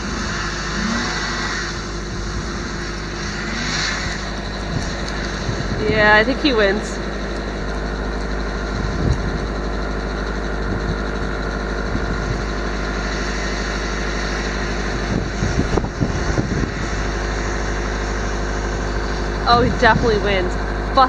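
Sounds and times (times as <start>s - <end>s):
vehicle engine idling: 0.0s - 21.0s.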